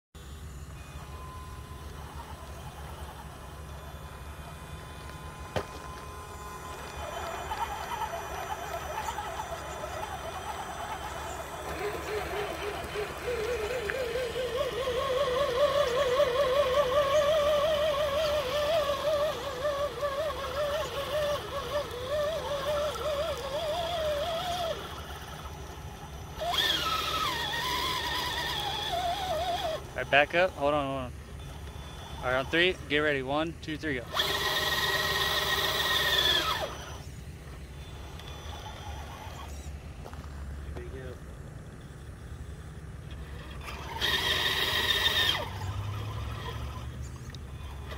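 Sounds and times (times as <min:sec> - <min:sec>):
electric motor and gear whine: 0:00.2 - 0:47.9.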